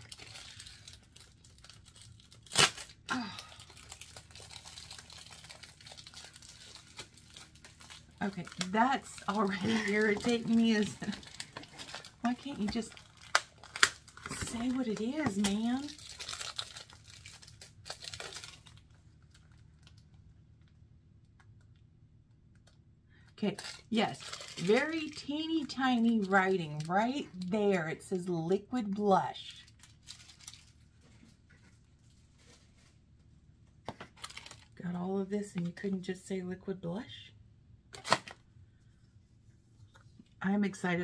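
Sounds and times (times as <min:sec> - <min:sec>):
packaging crinkling and rustling: 0:00.0 - 0:20.2, 0:23.4 - 0:27.5, 0:29.3 - 0:34.8.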